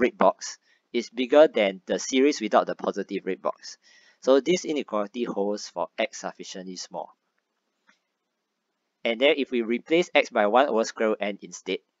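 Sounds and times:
spoken word: 0.0s - 7.0s.

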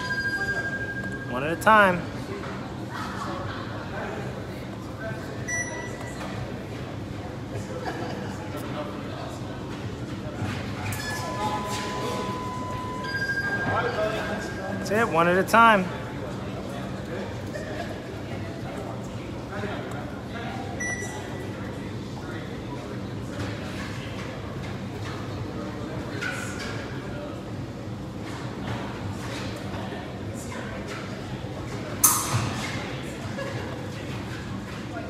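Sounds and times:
low hum of large hall: 0.0s - 35.0s.

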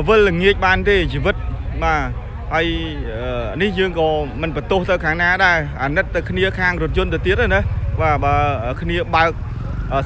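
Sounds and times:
small motorcycle engine rumble: 0.0s - 10.0s.

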